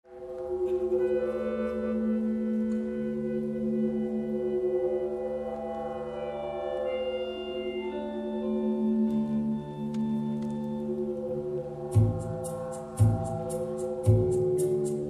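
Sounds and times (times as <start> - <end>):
band droning chords: 0.1 - 15.0.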